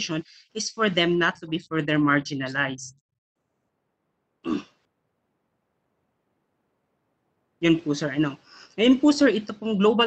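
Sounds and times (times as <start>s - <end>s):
man clearing his throat: 4.4s - 4.9s.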